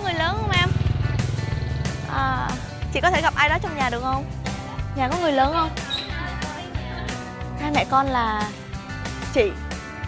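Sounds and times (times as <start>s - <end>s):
motorbike riding past: 0.0s - 3.2s
background music: 0.0s - 10.0s.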